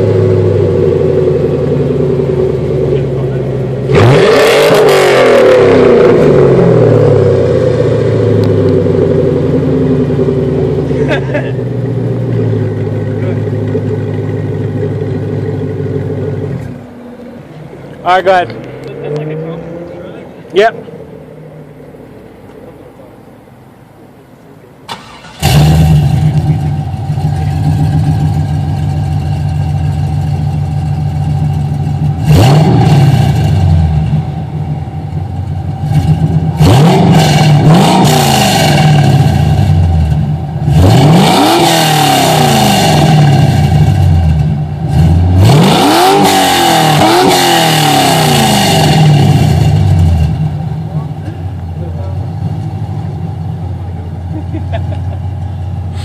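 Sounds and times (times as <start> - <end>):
car engine revving: 0.0 - 56.0
car engine starting and idling: 0.0 - 56.0.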